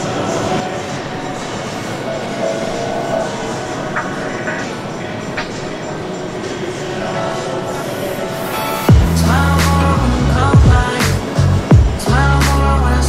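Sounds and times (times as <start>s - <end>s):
background voices: 0.0s - 13.0s.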